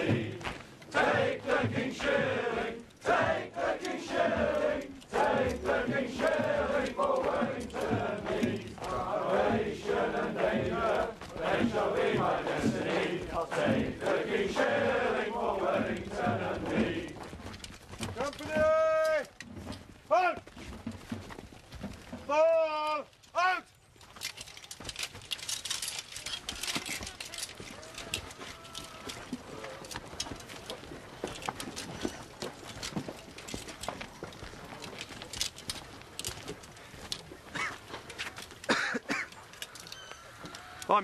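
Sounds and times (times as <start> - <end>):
men singing a marching song: 0.0 - 17.5
marching feet on dirt road: 0.0 - 41.0
farm animal crying: 39.8 - 41.0.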